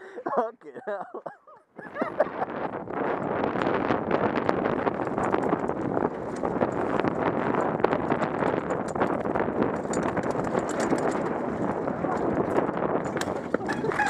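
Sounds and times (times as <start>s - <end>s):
bike rattling clicks and knocks: 2.6s - 14.0s.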